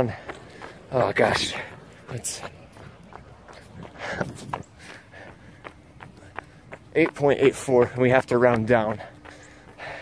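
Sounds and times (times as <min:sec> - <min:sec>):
running footsteps on pavement: 0:00.0 - 0:10.0.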